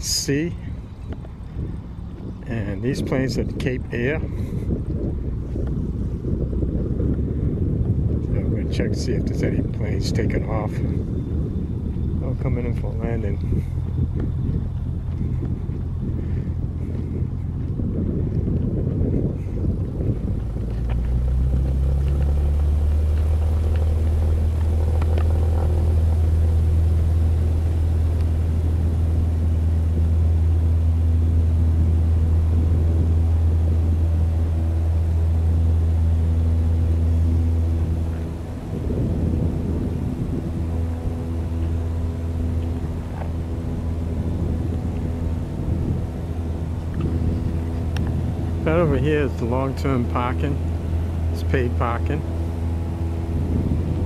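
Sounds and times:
propeller plane engines droning: 0.0 - 54.0
wind gusts on microphone: 0.0 - 54.0.

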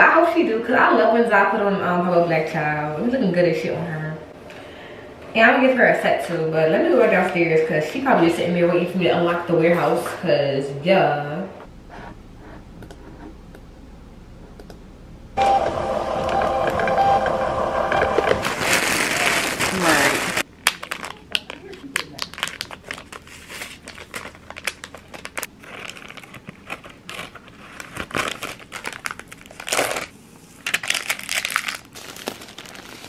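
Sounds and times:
label printer motor whine: 15.4 - 18.6
plastic mailers crinkling: 18.2 - 33.0.

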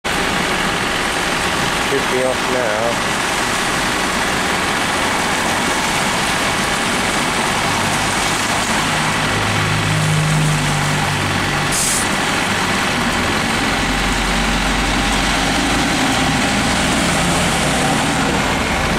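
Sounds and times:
traffic on wet road: 0.0 - 18.9
bus engine pulling away: 0.1 - 18.9
air brake hiss: 11.7 - 12.1.

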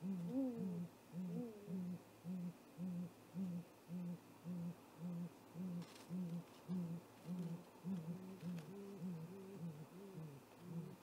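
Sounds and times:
owl deep hoots: 0.0 - 11.0.

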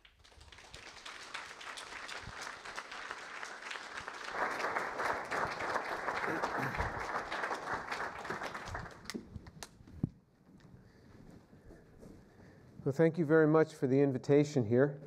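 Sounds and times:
audience applauding: 0.0 - 9.3.

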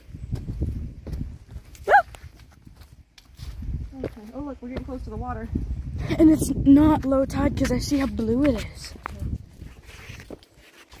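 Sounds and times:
footsteps on dirt trail: 0.0 - 5.2, 6.9 - 11.0.

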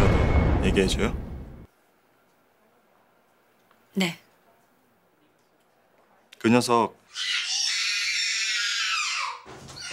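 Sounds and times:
shrill raspy cry: 7.1 - 9.9.

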